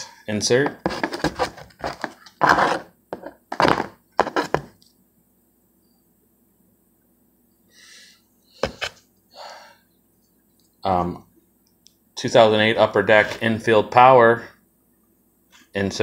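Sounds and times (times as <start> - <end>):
plastic card holders rustling: 0.6 - 4.8, 8.6 - 9.0.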